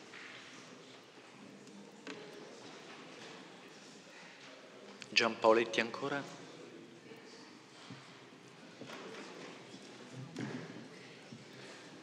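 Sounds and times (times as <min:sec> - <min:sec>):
faint background voices: 0:00.0 - 0:05.1, 0:06.2 - 0:12.0.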